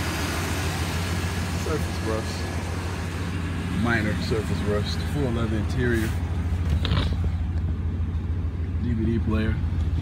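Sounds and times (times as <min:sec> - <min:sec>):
engine idling rumble: 0:00.0 - 0:10.0.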